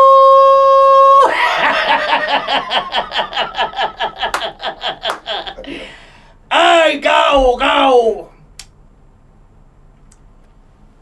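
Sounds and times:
man laughing loudly: 1.2 - 6.0.

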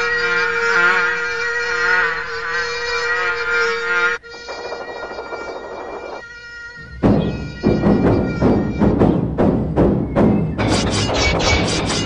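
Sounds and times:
mosquitoes buzzing: 0.0 - 8.9.

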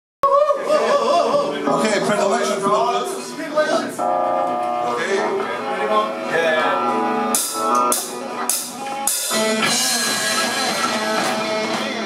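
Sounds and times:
electric guitars holding a chord: 0.8 - 12.0.

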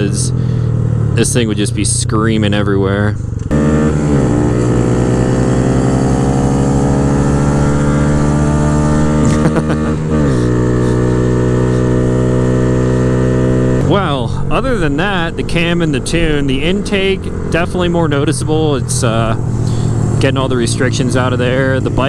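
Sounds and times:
motorcycle engine accelerating: 0.0 - 22.0.

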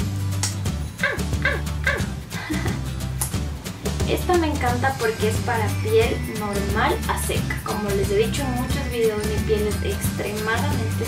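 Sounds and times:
background music: 0.0 - 11.0
small dog yipping: 1.0 - 2.1.

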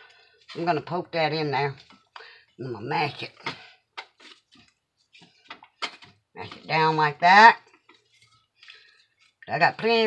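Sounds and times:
soft clicks and squishes of food: 4.0 - 6.3, 7.6 - 9.5.

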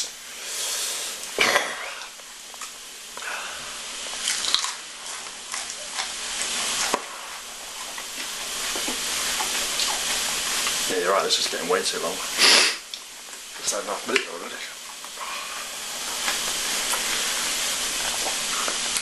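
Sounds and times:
man chewing with wet mouth noises: 1.1 - 11.7, 12.3 - 19.0.

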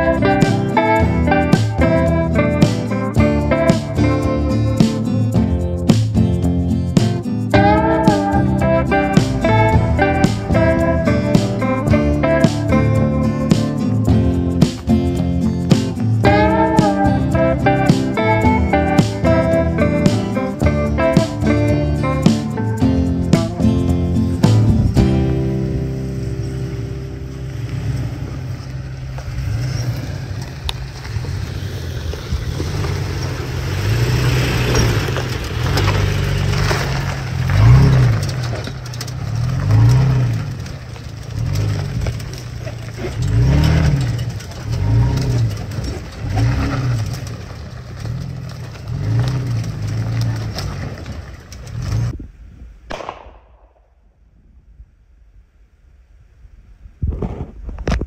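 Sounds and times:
truck engine revving: 0.0 - 52.2.

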